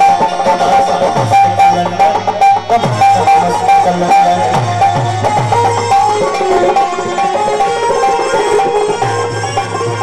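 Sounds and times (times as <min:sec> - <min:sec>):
dholak drumming: 0:00.0 - 0:10.0
folk music melody: 0:00.0 - 0:10.0.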